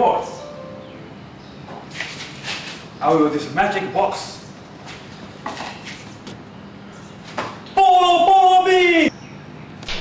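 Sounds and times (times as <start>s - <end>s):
faint hum and hiss: 0.0s - 10.0s.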